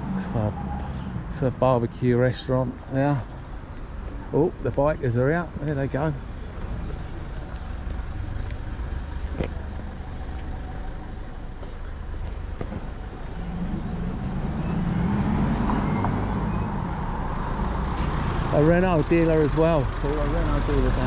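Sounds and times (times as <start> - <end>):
car engines passing by: 0.0 - 21.0.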